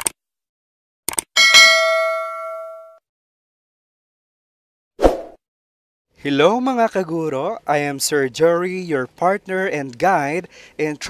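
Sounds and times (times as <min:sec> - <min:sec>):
bright bell ding: 0:01.4 - 0:03.0.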